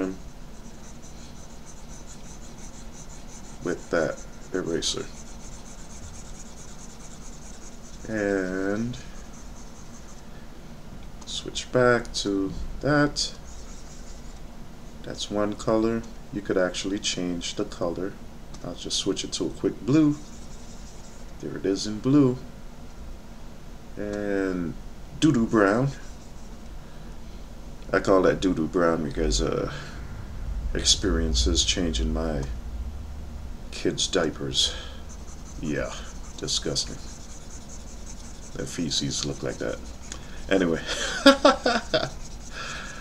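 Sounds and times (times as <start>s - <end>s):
stylus rubbing on tablet surface: 0.0s - 10.3s, 13.3s - 14.4s, 20.1s - 21.4s, 25.6s - 26.6s, 35.0s - 43.0s.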